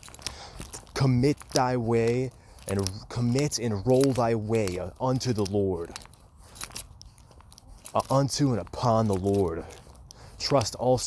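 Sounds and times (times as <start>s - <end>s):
man speaking: 0.9s - 6.0s, 8.0s - 9.8s, 10.4s - 11.0s.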